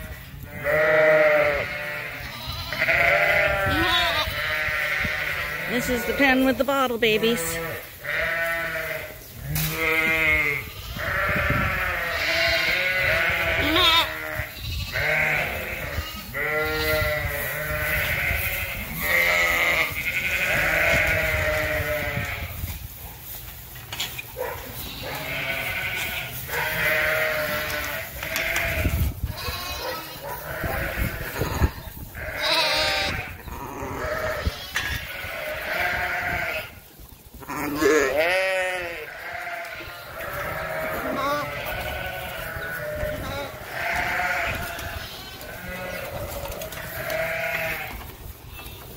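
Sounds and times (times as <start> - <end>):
sheep and lambs bleating: 0.0 - 22.8, 24.7 - 48.9.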